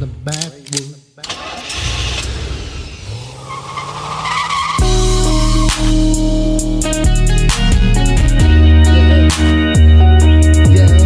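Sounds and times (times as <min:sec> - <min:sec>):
car engine revving: 0:01.3 - 0:06.8
tires skidding and squealing: 0:01.8 - 0:06.0
music beat: 0:04.8 - 0:11.0.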